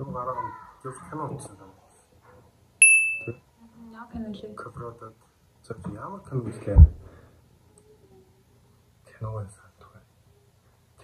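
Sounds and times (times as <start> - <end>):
bright chime ding: 2.8 - 3.4.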